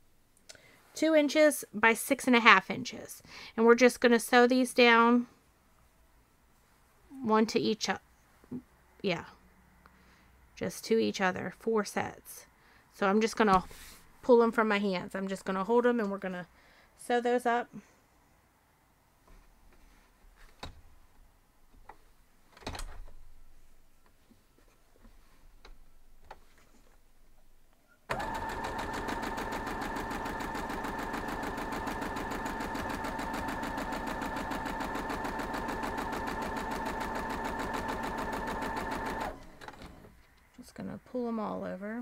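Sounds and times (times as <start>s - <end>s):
sewing machine stitching: 28.1s - 40.1s.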